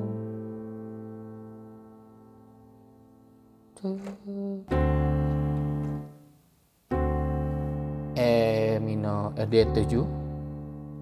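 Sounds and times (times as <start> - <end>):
piano chords on keyboard: 0.0 - 11.0.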